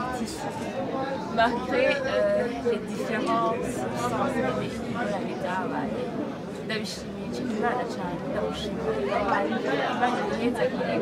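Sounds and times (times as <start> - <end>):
background chatter: 0.0 - 11.0
woman speaking into microphones: 1.3 - 6.0, 6.7 - 11.0.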